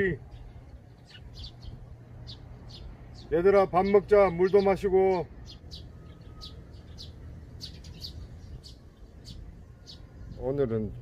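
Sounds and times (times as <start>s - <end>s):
sparrows chirping: 0.0s - 11.0s.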